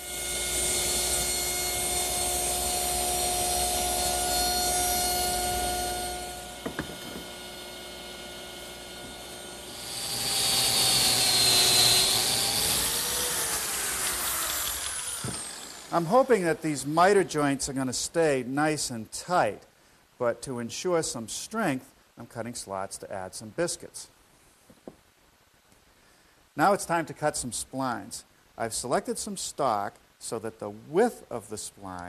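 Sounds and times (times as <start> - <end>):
power saw whining: 0.0 - 16.9
power tool cutting: 0.0 - 16.9.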